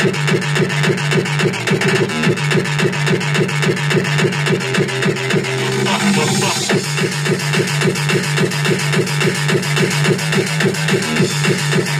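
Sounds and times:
electronic music with fast beat: 0.0s - 11.9s.

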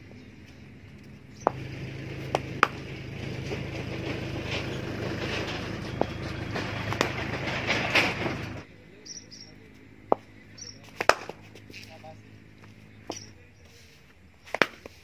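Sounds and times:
tractor engine droning: 0.0s - 15.0s
sharp knocks: 1.4s - 8.6s.

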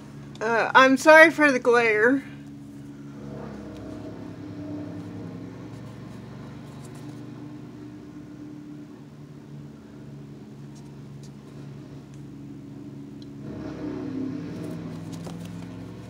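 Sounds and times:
low machine hum: 0.0s - 16.0s
plastic page turning in binder: 14.9s - 16.0s.

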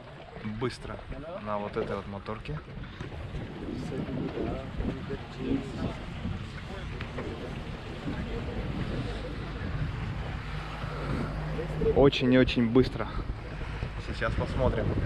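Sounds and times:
motorboat engine running: 0.0s - 15.0s
voices talking: 0.4s - 15.0s
wind on microphone: 2.5s - 15.0s.

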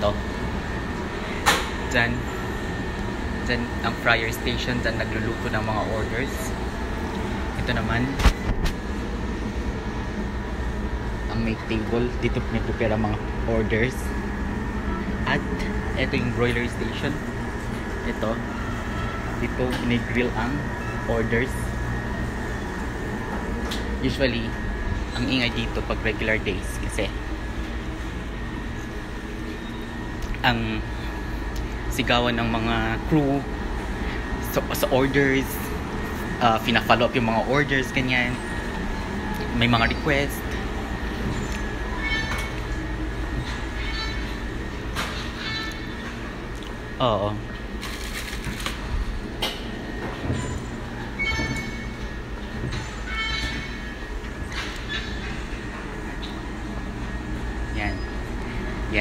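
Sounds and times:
kitchen machinery hum: 0.0s - 59.0s
thin high whine: 0.0s - 59.0s
brief high-pitched squeaks: 41.3s - 42.6s, 51.2s - 52.0s, 52.8s - 53.9s.

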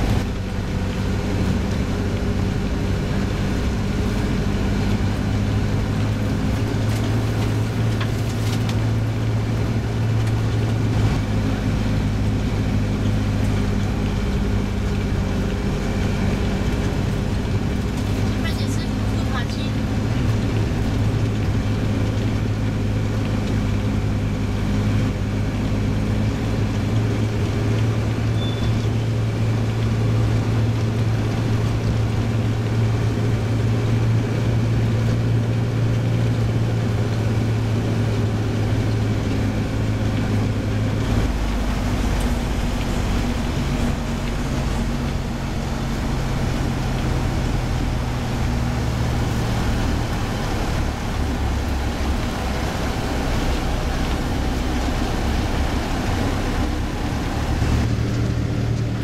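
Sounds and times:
constant low hum: 0.0s - 59.0s
vehicle engine and road drone: 0.0s - 59.0s.

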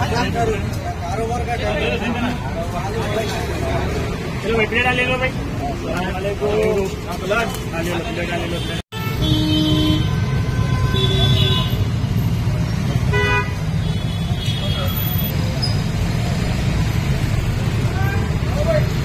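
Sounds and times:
people talking: 0.0s - 8.8s
road traffic rumble: 0.0s - 19.0s
vehicle horns honking: 8.4s - 12.0s, 12.9s - 15.3s.

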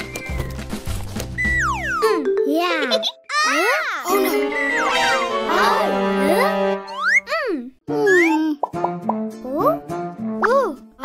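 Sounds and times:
light children's music: 0.0s - 11.0s.

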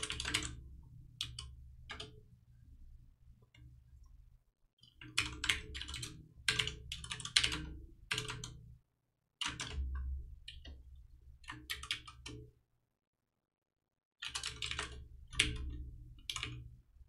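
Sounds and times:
typing on computer keyboard: 0.0s - 0.6s, 1.2s - 2.2s, 4.8s - 8.6s, 9.4s - 10.8s, 11.4s - 12.4s, 14.2s - 16.7s.

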